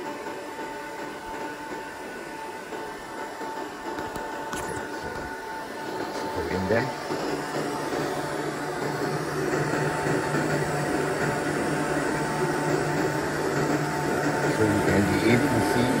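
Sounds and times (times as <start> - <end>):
machine hum: 0.0 - 16.0
thin whine: 0.0 - 16.0.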